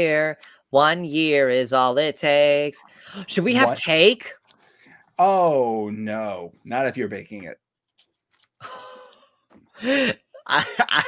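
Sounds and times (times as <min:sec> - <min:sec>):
man speaking: 0:03.3 - 0:04.0, 0:05.2 - 0:07.6
man gasping: 0:09.8 - 0:10.2.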